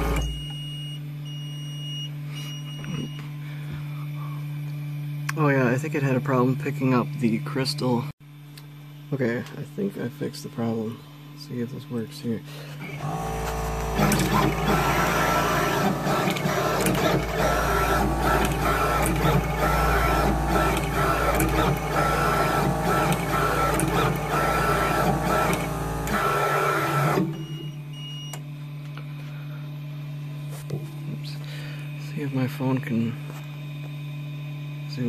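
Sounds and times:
machine whine: 0.0 - 1.1, 2.1 - 35.0
steady hum: 2.1 - 35.0
pick-and-place machine clicking: 13.0 - 26.3.

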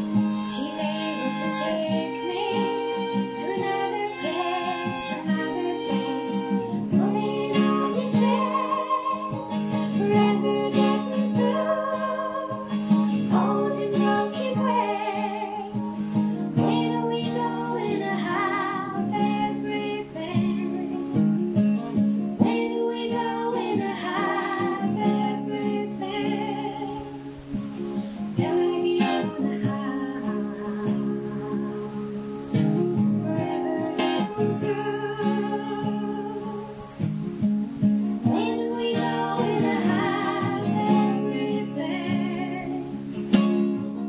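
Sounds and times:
acoustic guitar strumming: 0.0 - 44.0
held pitched notes: 0.0 - 44.0
wavering lead melody: 0.0 - 44.0.

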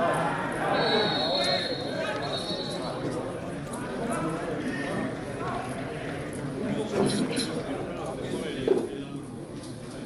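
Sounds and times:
football match crowd noise: 0.0 - 10.0.

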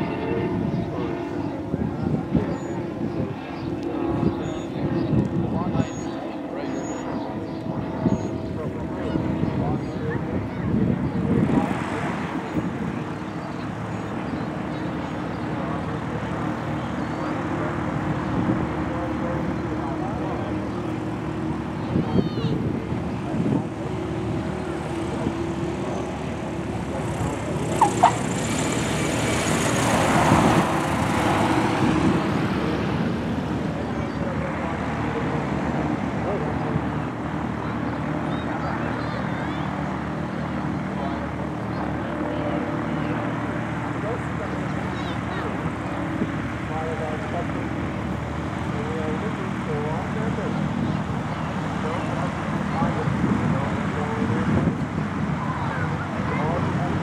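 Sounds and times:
propeller plane engine: 0.0 - 57.0.

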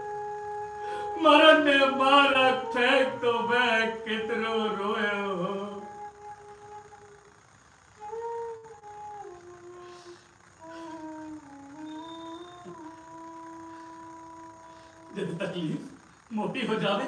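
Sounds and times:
flute playing slow melody: 0.0 - 15.5.

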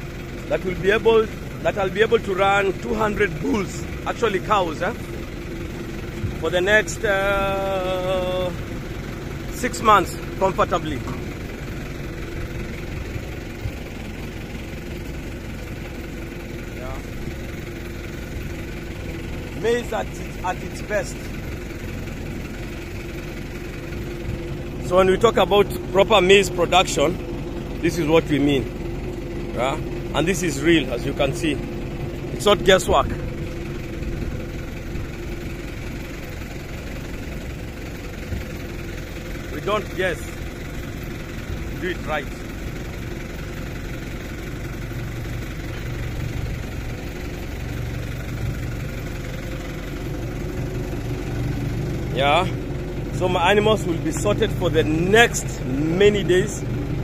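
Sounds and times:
engine idling: 0.0 - 57.0
steady mechanical hum: 0.0 - 57.0.

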